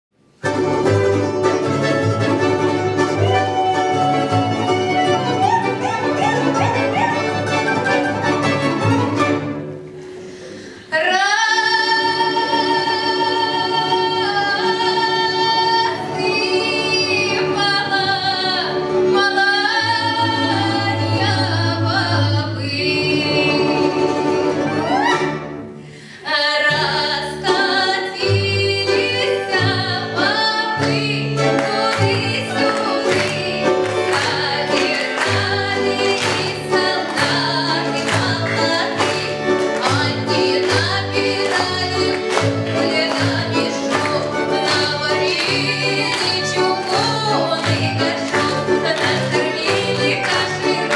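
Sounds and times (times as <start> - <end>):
folk ensemble playing: 0.2 - 50.9
woman singing with vibrato: 3.0 - 8.0, 10.9 - 25.3, 26.2 - 50.9.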